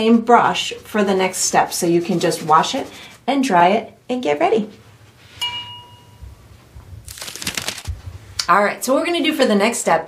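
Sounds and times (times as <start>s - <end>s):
drinking glass clinking: 5.4s - 6.2s.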